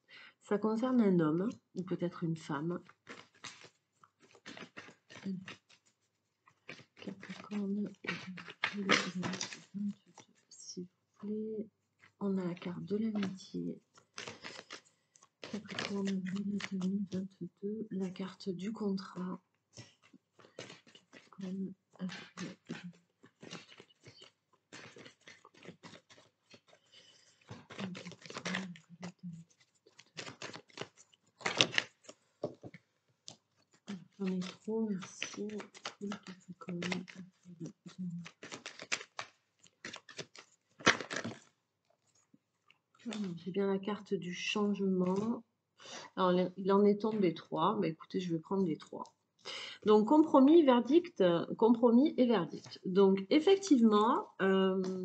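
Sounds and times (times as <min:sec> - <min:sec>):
person speaking: 0:00.5 - 0:02.9, 0:05.1 - 0:05.6, 0:07.0 - 0:14.8, 0:15.4 - 0:20.0, 0:20.6 - 0:26.2, 0:26.9 - 0:30.6, 0:33.9 - 0:38.6, 0:43.0 - 0:55.0
cards being shuffled: 0:02.7 - 0:10.5, 0:12.0 - 0:42.3, 0:43.0 - 0:43.6, 0:44.7 - 0:46.0.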